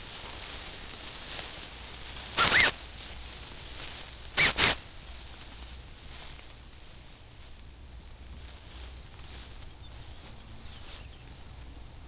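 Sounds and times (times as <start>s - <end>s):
dog training whistle pips: 2.4s - 2.8s, 4.4s - 4.8s.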